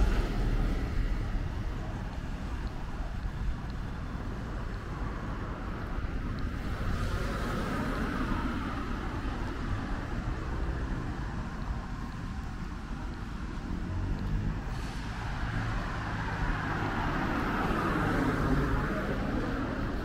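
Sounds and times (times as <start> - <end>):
cars driving past: 0.0 - 20.0.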